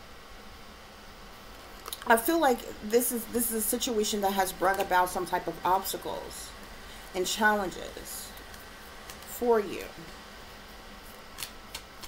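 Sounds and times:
cards clicking: 0:11.4 - 0:12.0.

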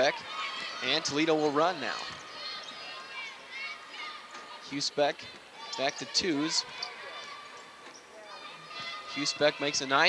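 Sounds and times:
crowd murmuring: 0:00.0 - 0:10.0.

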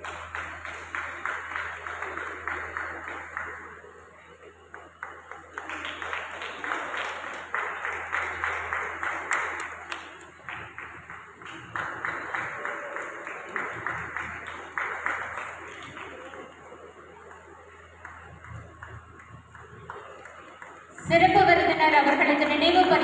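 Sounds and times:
audience applauding: 0:00.0 - 0:23.0.

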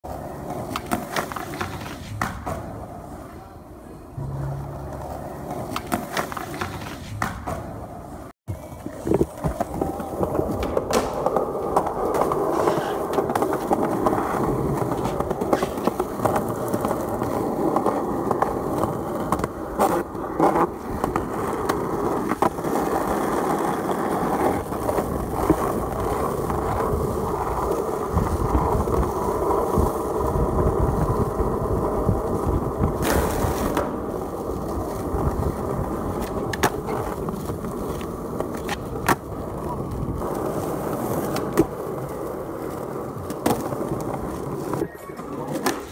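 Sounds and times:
skateboard wheels rolling on asphalt: 0:00.0 - 0:45.9
skateboard scrape: 0:00.1 - 0:45.9
skateboard clacks popping and landing: 0:00.4 - 0:02.8, 0:05.0 - 0:07.8, 0:08.6 - 0:31.0, 0:32.6 - 0:42.0, 0:42.6 - 0:45.9.

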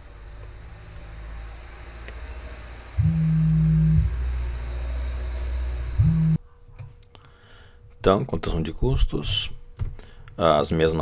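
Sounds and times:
low droning hum: 0:02.2 - 0:06.5.

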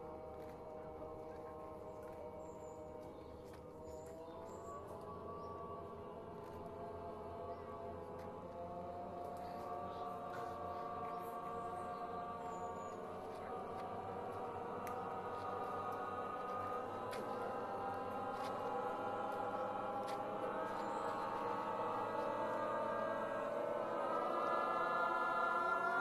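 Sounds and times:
voice choir holding sustained tones: 0:00.0 - 0:26.0.

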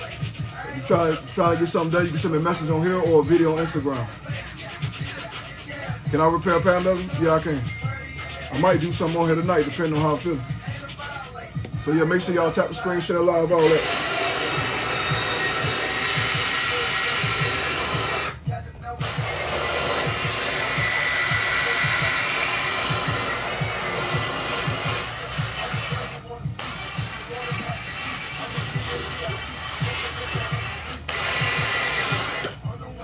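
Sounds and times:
cordless drill whirring: 0:13.7 - 0:18.4, 0:19.0 - 0:32.6.

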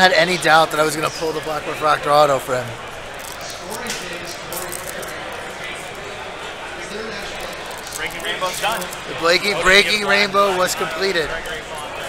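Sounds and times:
crowd murmur: 0:00.0 - 0:12.0
cards and wrappers rustling: 0:03.1 - 0:05.9, 0:06.8 - 0:12.0.

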